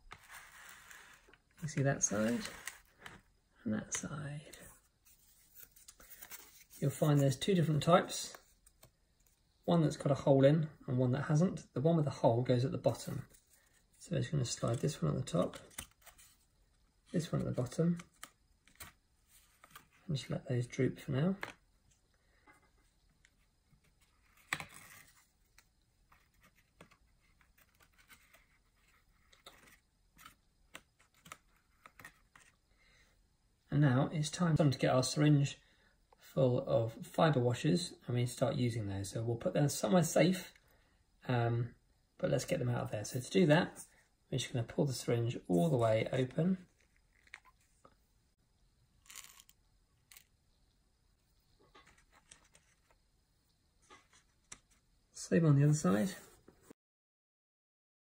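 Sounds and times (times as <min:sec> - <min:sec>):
cardboard scrape: 0:00.0 - 0:03.2
syringe scraping open: 0:49.0 - 0:50.3
small clicks and rustles: 0:51.6 - 0:53.0.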